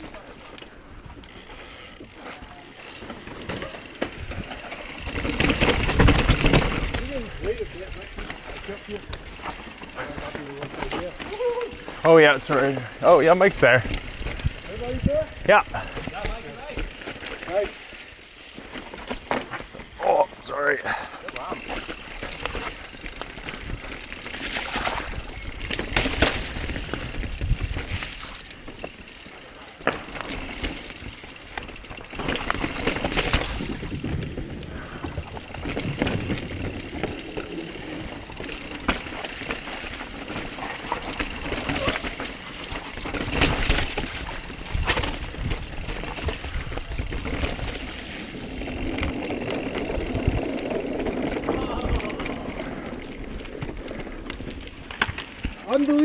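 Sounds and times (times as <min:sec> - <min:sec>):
bike tyres on dirt trail: 0:00.0 - 0:56.0
bike knocks and rattles: 0:01.2 - 0:20.0, 0:21.4 - 0:56.0.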